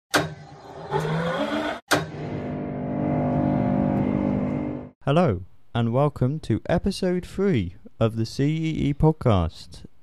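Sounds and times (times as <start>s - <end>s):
short rising whine: 0.6s - 4.9s.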